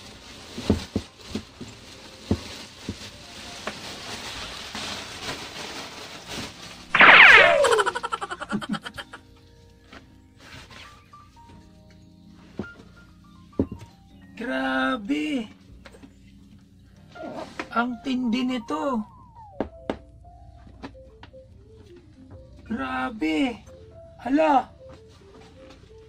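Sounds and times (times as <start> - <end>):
whistling tones sweeping down: 6.9 - 9.2.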